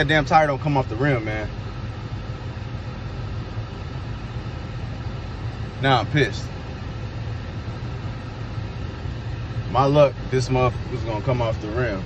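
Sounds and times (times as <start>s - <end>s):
road and engine rumble: 0.0s - 12.0s.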